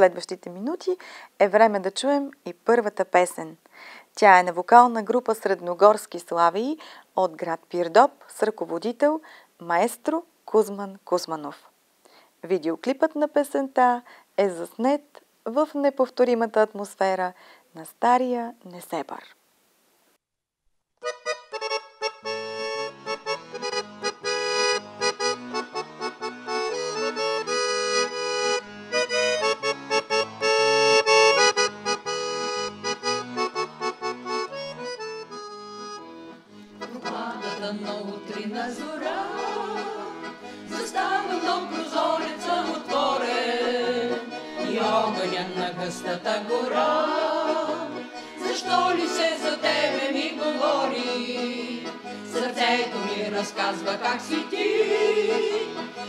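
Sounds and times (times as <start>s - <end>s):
piano accordion playing: 21.0s - 56.0s
group singing in harmony: 36.9s - 56.0s.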